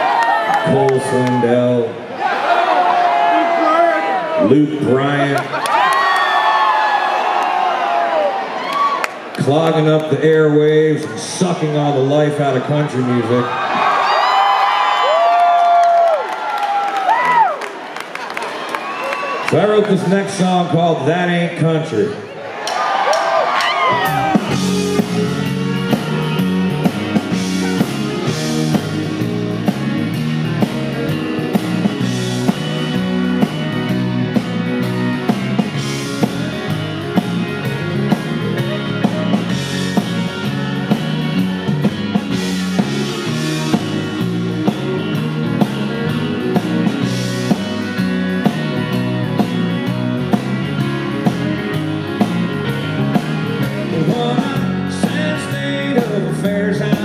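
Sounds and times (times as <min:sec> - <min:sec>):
electric guitar: 0:23.5 - 0:57.0
drums steady beat: 0:23.6 - 0:57.0.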